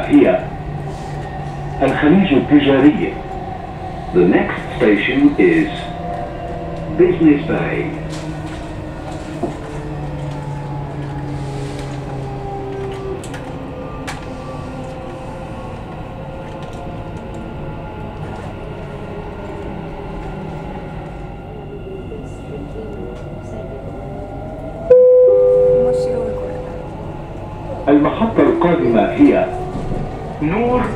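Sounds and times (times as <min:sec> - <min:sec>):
train wheels rumbling on rail: 0:00.0 - 0:24.9, 0:25.7 - 0:30.9
two-note tone: 0:24.9 - 0:27.0.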